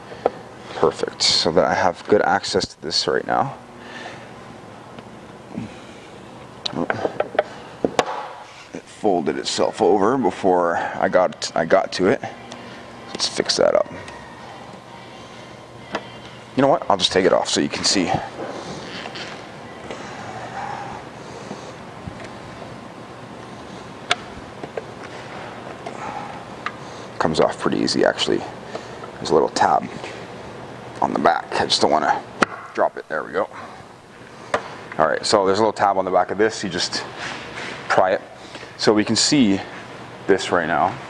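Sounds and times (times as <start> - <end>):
steady background hiss: 0.0 - 41.0.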